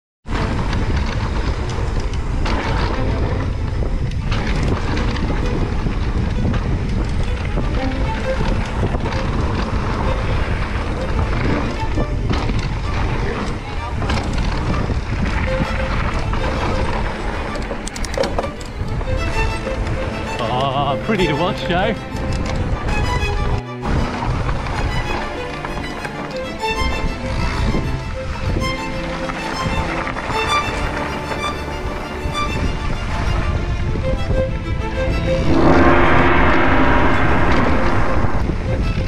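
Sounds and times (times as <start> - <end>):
wind rushing over microphone: 0.3 - 17.8, 32.5 - 39.0.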